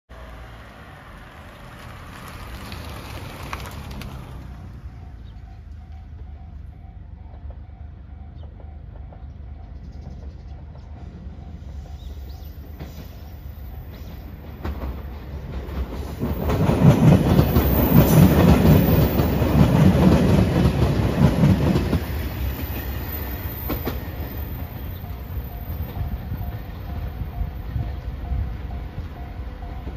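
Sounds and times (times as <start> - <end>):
diesel train approaching: 0.1 - 29.9.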